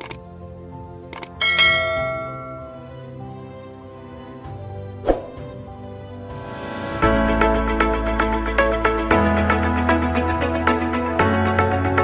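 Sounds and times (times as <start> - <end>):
soft background music: 0.0 - 12.0
notification bell ding: 1.4 - 3.0.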